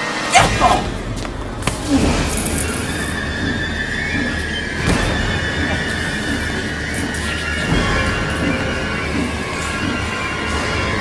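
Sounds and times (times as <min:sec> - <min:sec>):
low rumbling drone: 0:00.5 - 0:11.0.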